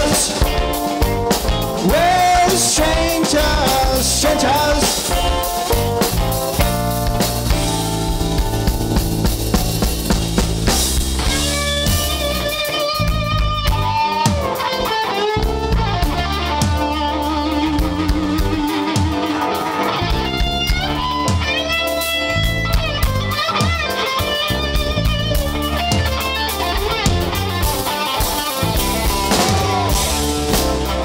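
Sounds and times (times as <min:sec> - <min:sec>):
bass guitar: 0:00.0 - 0:31.0
drum kit: 0:00.0 - 0:31.0
electric guitar lead: 0:00.0 - 0:31.0.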